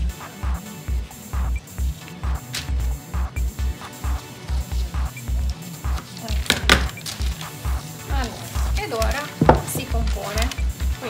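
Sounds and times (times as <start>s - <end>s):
music with steady bass beat: 0.0s - 11.0s
scissors cutting paper: 5.4s - 10.8s.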